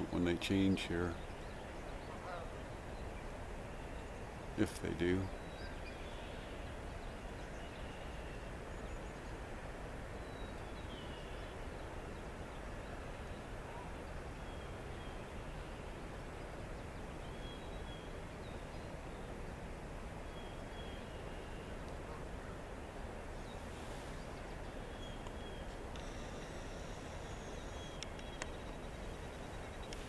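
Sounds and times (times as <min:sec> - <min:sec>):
light clicks: 0:27.9 - 0:28.8.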